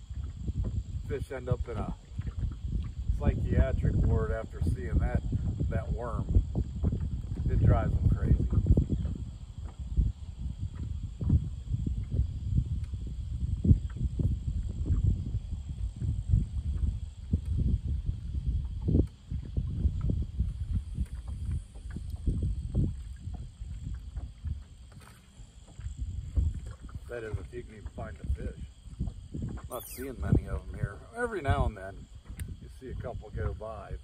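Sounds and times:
water knocking against hull: 0.0 - 34.0
wind buffeting microphone: 0.0 - 34.0.

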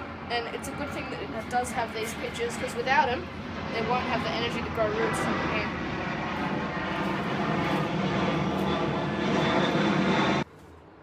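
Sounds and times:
airplane engine passing overhead: 0.0 - 11.0.

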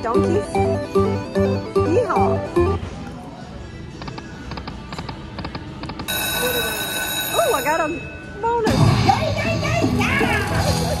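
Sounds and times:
celebratory machine music: 0.0 - 2.8.

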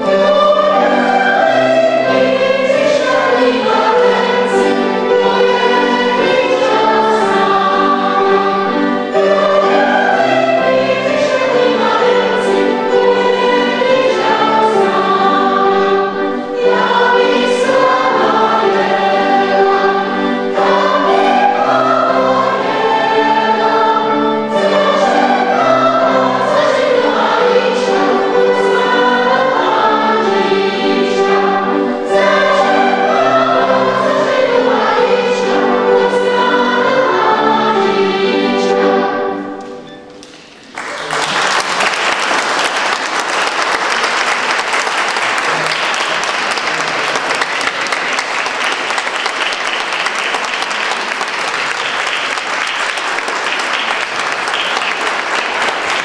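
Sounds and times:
mixed choir singing: 0.0 - 40.1
audience applause: 40.6 - 56.0.

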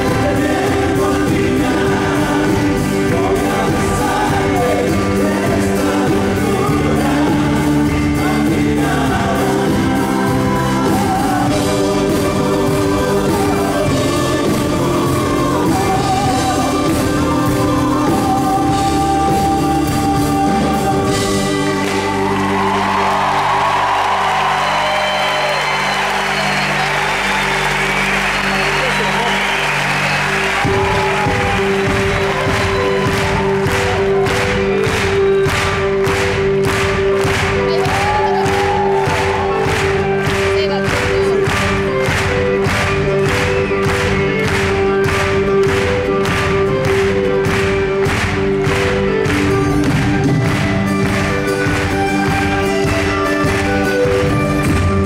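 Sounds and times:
audience noise: 0.0 - 55.0
folk band playing live: 0.0 - 55.0
steady drum beat: 0.0 - 55.0.

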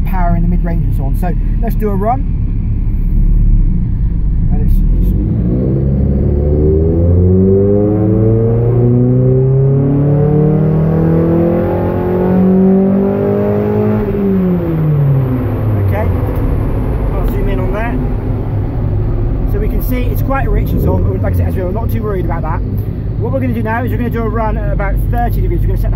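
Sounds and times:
car engine revving at full throttle: 0.0 - 25.9.

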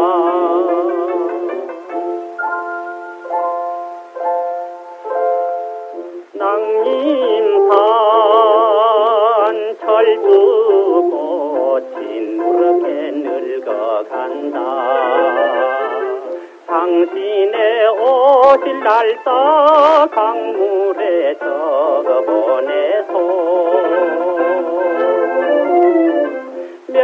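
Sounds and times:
man singing with vibrato: 0.0 - 3.5, 6.0 - 27.0
band accompaniment: 1.0 - 6.2.

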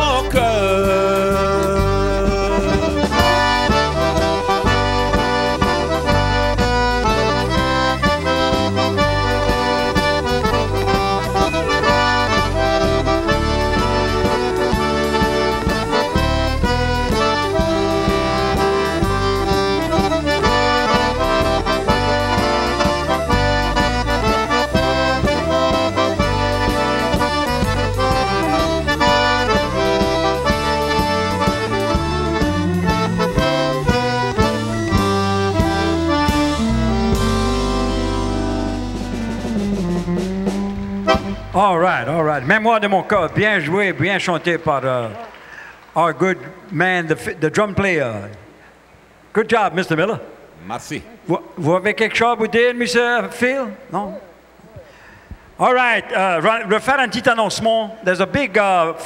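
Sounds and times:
button accordion playing: 0.0 - 42.9
drum kit beat: 0.0 - 43.2.

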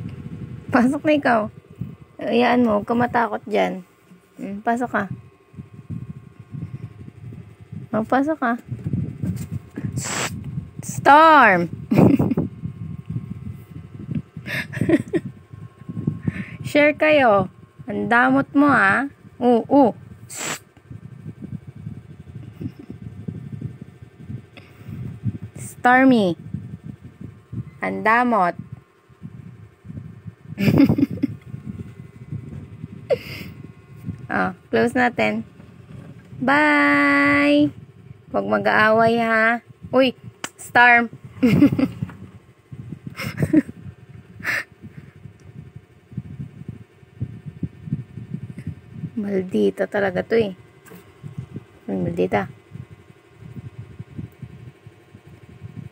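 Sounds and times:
cat hissing: 9.8 - 10.4, 20.2 - 20.8
short breathy burst: 9.8 - 10.4, 20.3 - 20.7.

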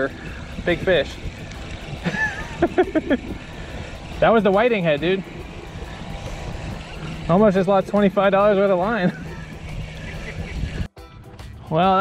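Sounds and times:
wind rumble on microphone: 0.0 - 11.0
man laughing: 2.0 - 3.5, 8.7 - 10.9.

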